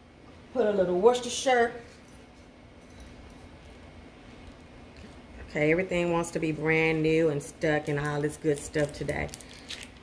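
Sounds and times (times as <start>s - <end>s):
faint low hum and hiss: 0.0s - 10.0s.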